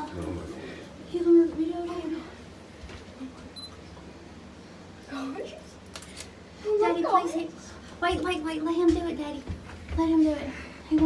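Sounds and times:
camera beep: 0:03.6 - 0:03.8.

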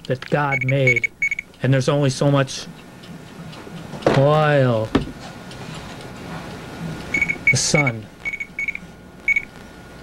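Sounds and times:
short electronic beeps: 0:00.5 - 0:01.5, 0:07.1 - 0:09.5.

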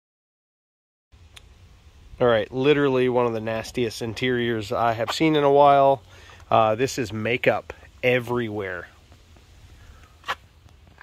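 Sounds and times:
faint low rumble: 0:01.2 - 0:11.0.

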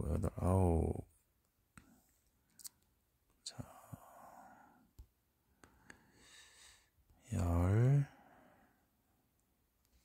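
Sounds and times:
soft whisper: 0:03.4 - 0:05.0, 0:07.1 - 0:08.9.

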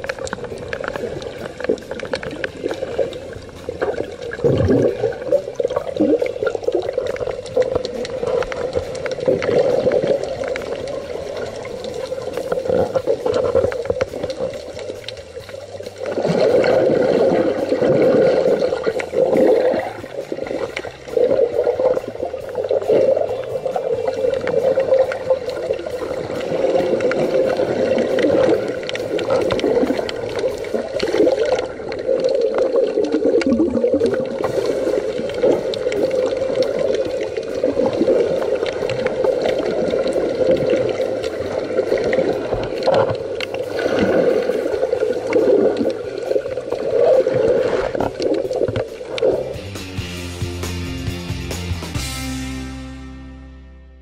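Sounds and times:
muffled underwater rushing and gurgling: 0:00.0 - 0:49.7.

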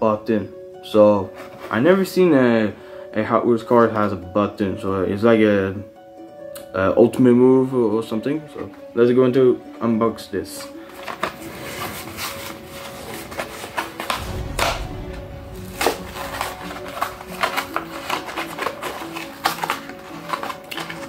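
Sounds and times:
background music held notes: 0:00.0 - 0:21.0
cardboard and plastic packaging crackling: 0:10.6 - 0:14.9, 0:15.6 - 0:21.0.

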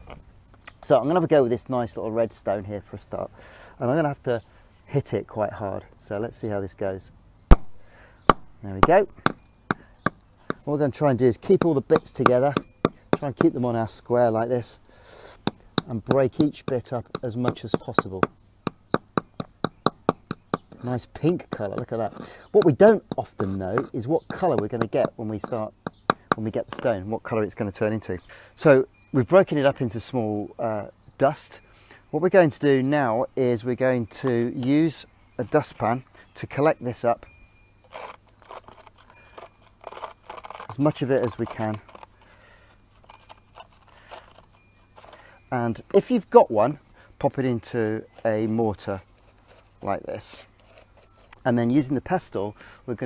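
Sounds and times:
hammer striking stone: 0:07.5 - 0:10.6, 0:11.5 - 0:13.6, 0:15.4 - 0:20.8, 0:23.8 - 0:26.8
person speaking: 0:08.6 - 0:09.4, 0:10.5 - 0:18.3, 0:20.6 - 0:30.8, 0:40.7 - 0:42.0, 0:49.8 - 0:50.5.

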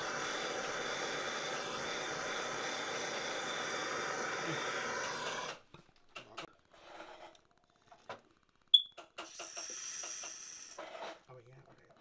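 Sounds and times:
hot metal sizzling in water: 0:00.0 - 0:05.6.

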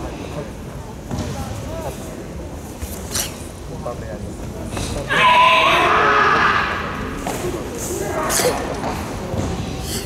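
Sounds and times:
spectators' voices in echoing hall: 0:00.0 - 0:10.0.

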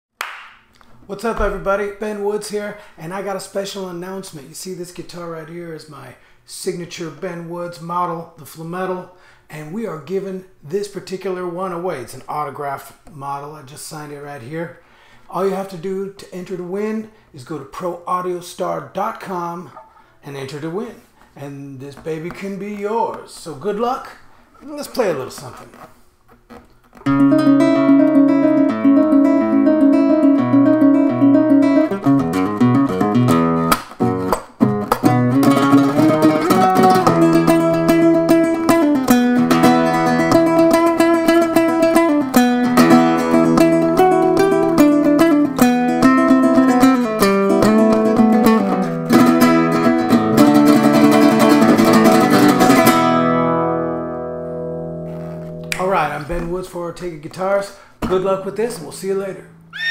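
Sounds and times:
fast flamenco guitar playing: 0:27.0 - 0:56.1, 0:58.0 - 0:59.9.

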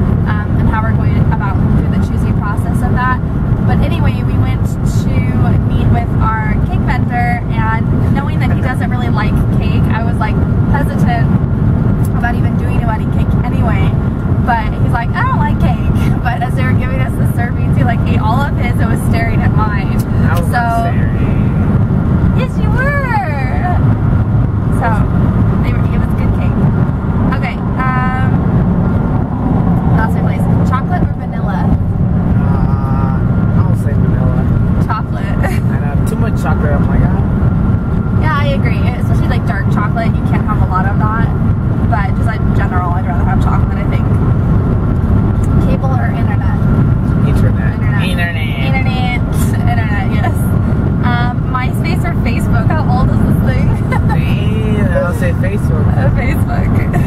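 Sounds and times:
car road and engine rumble: 0:00.0 - 0:57.0
man and woman laughing: 0:53.8 - 0:54.3.

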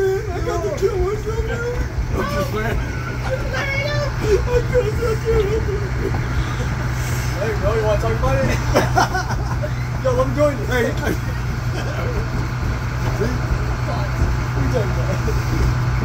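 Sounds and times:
people talking: 0:00.0 - 0:15.8
train rumbling on track: 0:00.0 - 0:16.0.

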